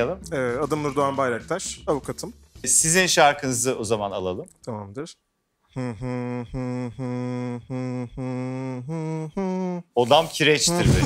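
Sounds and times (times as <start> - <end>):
man humming into microphone: 5.7 - 10.0.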